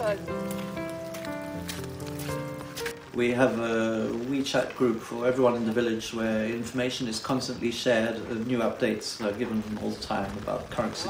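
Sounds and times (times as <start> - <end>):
background music sustained notes: 0.0 - 6.5.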